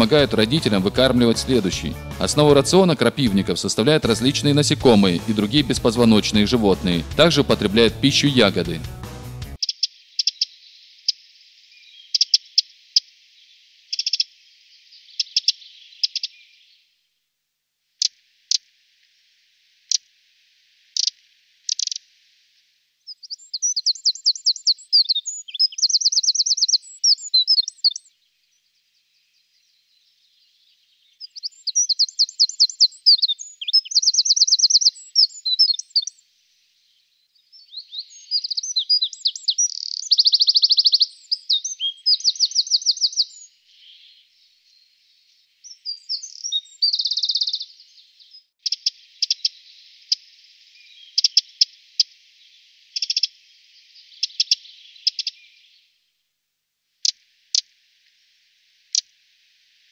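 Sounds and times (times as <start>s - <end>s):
dry ticking bird calls: 0.0s - 7.9s, 9.6s - 16.8s, 18.0s - 19.2s, 19.8s - 20.2s, 20.8s - 28.1s, 31.0s - 36.2s, 37.5s - 44.3s, 45.6s - 55.8s, 57.0s - 58.2s, 58.8s - 59.9s
wren singing fast trills: 0.0s - 16.8s, 20.9s - 22.0s, 23.1s - 36.2s, 36.8s - 55.9s.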